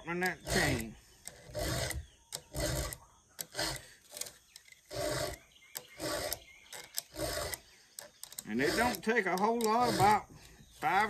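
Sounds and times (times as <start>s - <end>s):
file rasping on chainsaw chain: 0.0s - 10.4s.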